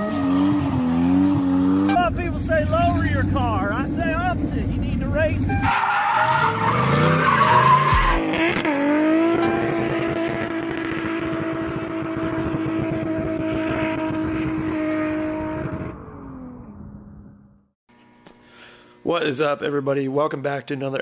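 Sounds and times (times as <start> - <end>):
car engine revving: 0.0 - 17.6
tyres squealing: 5.4 - 8.2.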